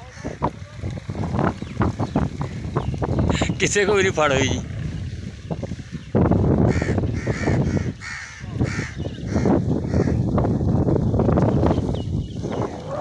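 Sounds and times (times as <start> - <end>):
low rumble on microphone: 0.0 - 13.0
bird calling: 5.8 - 10.2.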